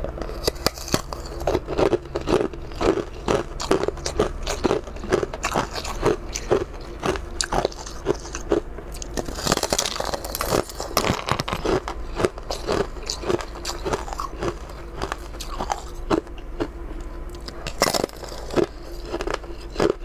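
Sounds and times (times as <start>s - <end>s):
crunchy bites and chewing: 0.0s - 20.0s.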